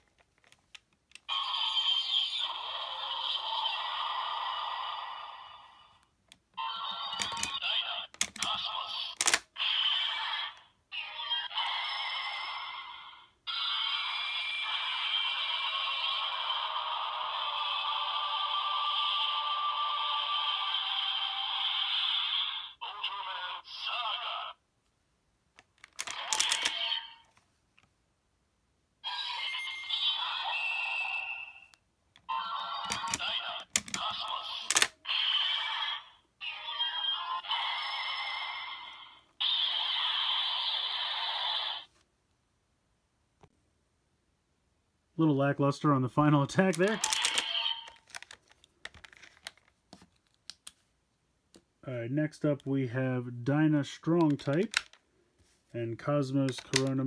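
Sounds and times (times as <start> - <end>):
toy electronic sound effects and music: 1.3 - 5.8, 6.6 - 24.6, 26.0 - 27.2, 29.0 - 31.7, 32.3 - 41.9, 46.6 - 48.3
plastic toy clicks: 7.0 - 9.6, 25.6 - 27.0, 32.8 - 35.0, 46.6 - 49.7, 54.2 - 55.0, 56.5 - 57.0.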